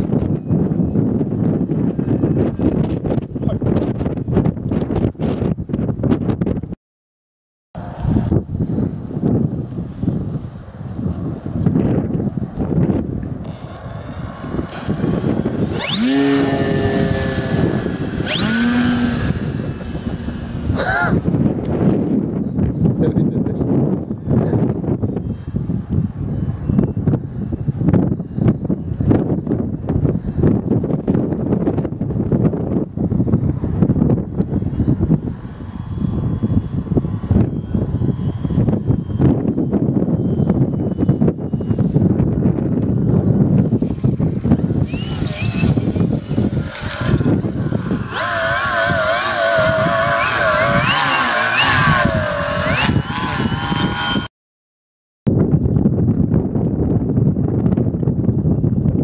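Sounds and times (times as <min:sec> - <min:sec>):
model plane motor whine: 0:00.0 - 0:06.7, 0:07.8 - 0:54.3
wind buffeting microphone: 0:00.0 - 0:06.8, 0:07.8 - 0:54.3, 0:55.3 - 0:59.0.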